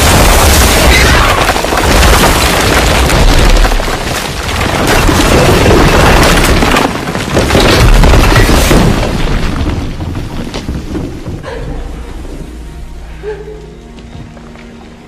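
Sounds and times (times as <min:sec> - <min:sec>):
music playing: 0:12.0 - 0:15.0.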